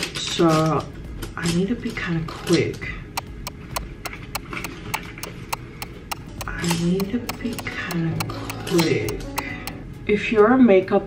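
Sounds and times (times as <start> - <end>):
sharp ticking clicks: 3.2 - 9.8.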